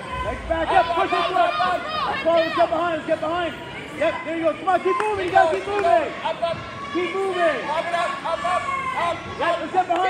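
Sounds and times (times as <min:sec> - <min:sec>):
voices shouting: 0:00.0 - 0:10.0.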